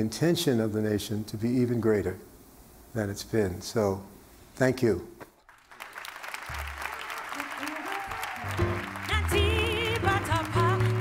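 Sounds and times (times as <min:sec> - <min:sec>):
audience applause: 0:05.4 - 0:11.0
live band music: 0:06.5 - 0:11.0.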